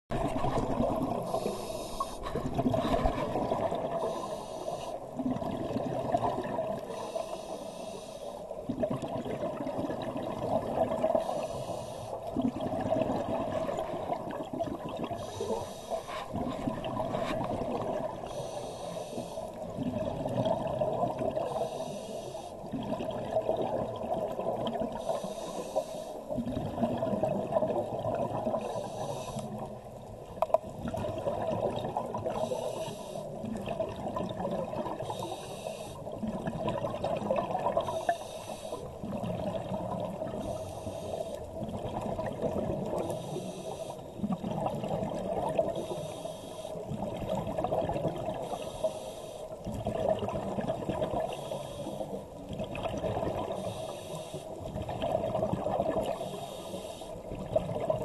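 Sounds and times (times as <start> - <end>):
exhaled bubbles gurgling: 0.1 - 58.0
regulator inhale hiss: 1.2 - 2.5, 3.9 - 5.1, 6.9 - 8.6, 11.2 - 12.3, 15.2 - 16.5, 18.1 - 19.7, 21.4 - 22.7, 24.9 - 26.3, 28.6 - 29.7, 32.3 - 33.4, 35.0 - 36.1, 37.8 - 39.0, 40.4 - 41.5, 43.0 - 44.1, 45.7 - 46.9, 48.4 - 49.6, 51.2 - 52.2, 53.5 - 54.6, 56.1 - 57.3.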